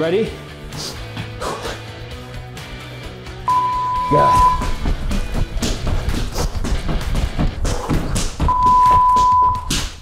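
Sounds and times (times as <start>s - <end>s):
long electronic timer beep: 3.5s - 4.6s, 8.5s - 9.7s.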